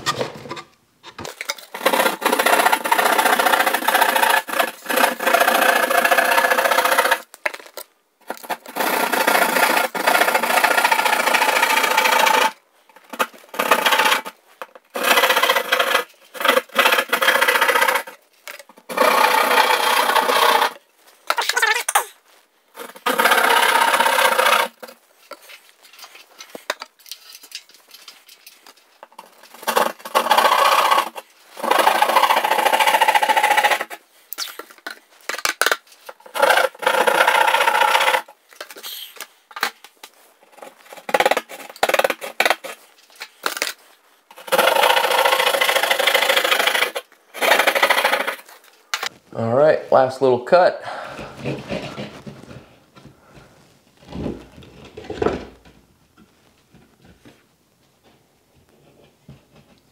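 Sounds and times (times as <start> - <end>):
hand saw rasping through drywall: 1.7 - 7.3, 8.3 - 12.6, 13.2 - 18.2, 18.9 - 20.8, 22.8 - 24.9, 29.3 - 34.0, 36.2 - 38.3, 44.3 - 48.6.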